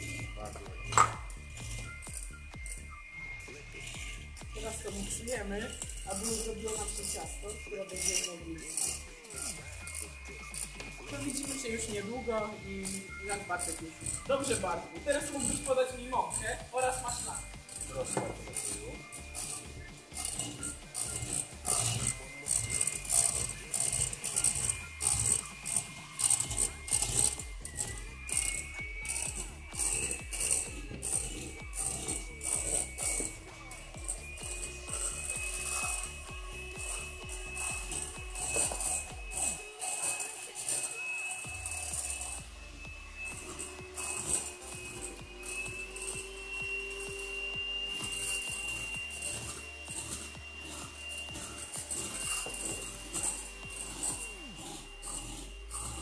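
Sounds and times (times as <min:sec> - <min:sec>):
background music with beat: 0:00.0 - 0:56.0
electric mixer motor whine: 0:00.0 - 0:56.0.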